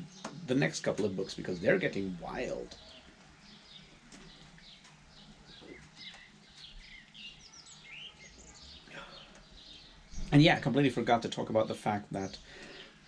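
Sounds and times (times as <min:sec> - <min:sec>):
small birds chirping: 0:00.0 - 0:13.0.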